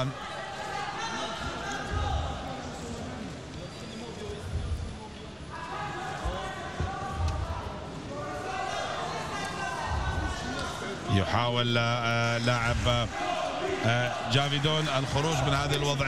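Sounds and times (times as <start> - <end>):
noisy background: 0.0 - 16.0.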